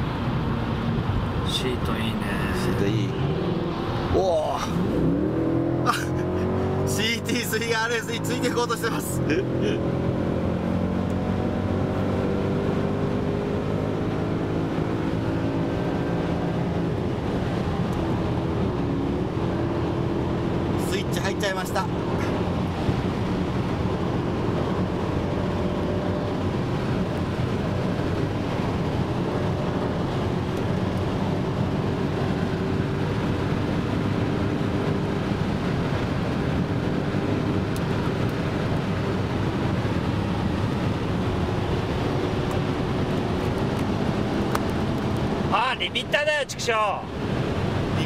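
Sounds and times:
car engine running hard: 0.0 - 48.0
wind and road noise: 0.0 - 48.0.

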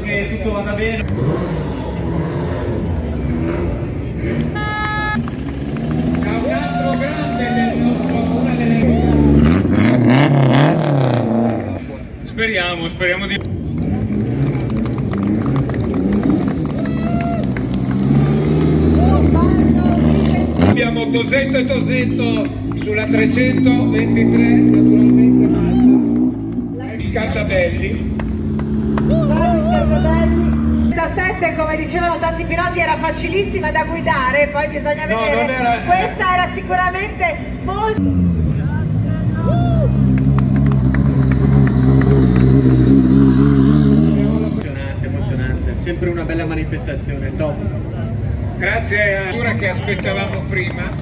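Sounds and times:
car engine revving: 1.0 - 12.2, 13.4 - 31.0, 38.0 - 44.7
rally car engine running: 38.0 - 44.7.

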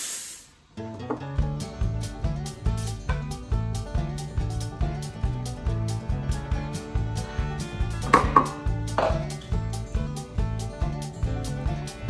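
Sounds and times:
background music with steady beat: 0.9 - 12.0
metal pitcher set down: 8.1 - 9.3.

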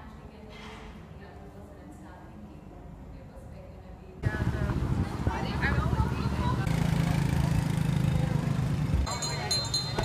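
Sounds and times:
street traffic noise: 1.9 - 10.0
motorbike engine running: 4.2 - 10.0.

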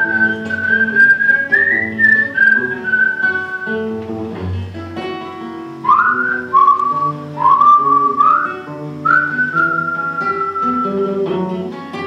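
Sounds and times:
person whistling melody: 0.0 - 4.0, 5.8 - 11.5
acoustic guitar playing: 0.0 - 12.0.

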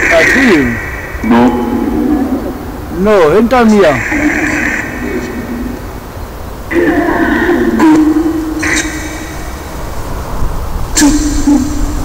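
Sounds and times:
narrow-band static hiss: 0.0 - 12.0.

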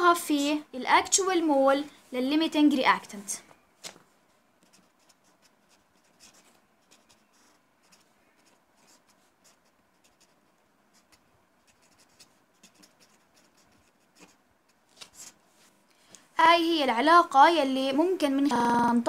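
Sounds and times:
pen scratching on paper: 4.6 - 15.4.

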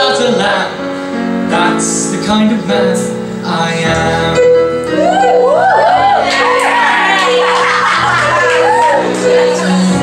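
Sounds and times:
man singing: 0.0 - 5.0, 9.2 - 10.0
digital piano playing: 0.0 - 10.0.

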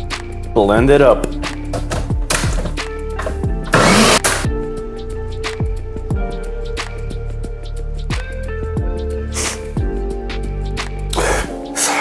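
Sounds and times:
background music with bass beat: 0.0 - 12.0
countertop blender running: 3.7 - 4.4.

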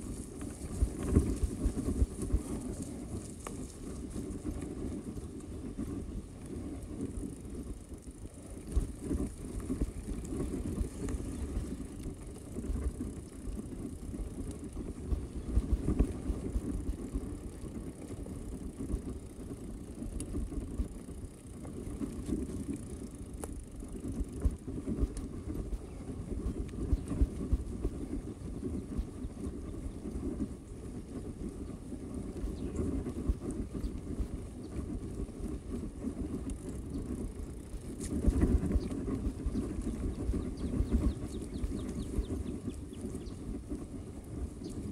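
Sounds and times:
bike tyres rumbling on dirt: 0.0 - 44.9.

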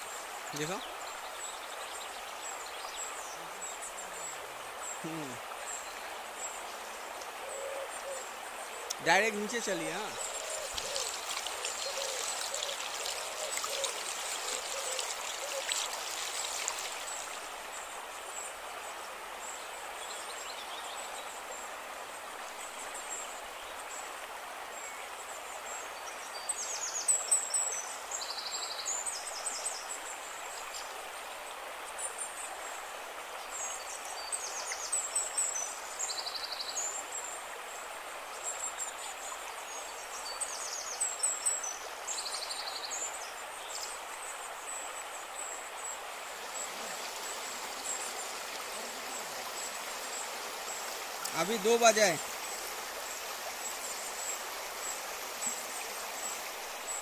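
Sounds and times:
stream rushing over stones: 0.0 - 57.0.

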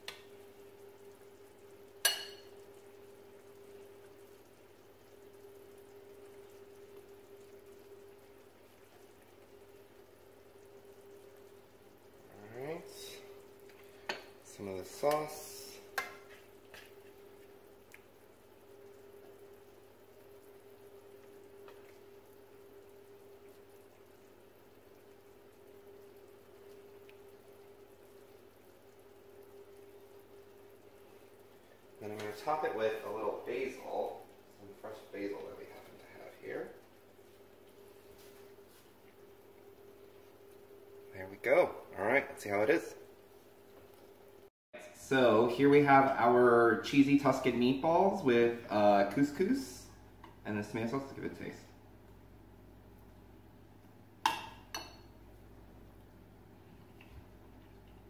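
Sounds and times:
utensils clinking on pan and bowl: 2.0 - 2.6.

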